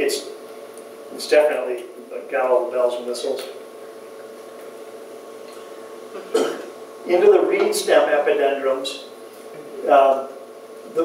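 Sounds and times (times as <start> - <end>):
faint room hum: 0.0 - 11.0
man clearing his throat: 6.2 - 6.8.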